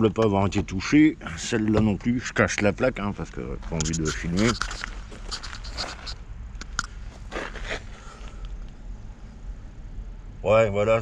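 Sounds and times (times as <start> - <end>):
low steady rumble: 0.0 - 11.0
footsteps on gravel: 3.6 - 6.2, 6.9 - 8.4
camera handling noise: 3.8 - 8.6.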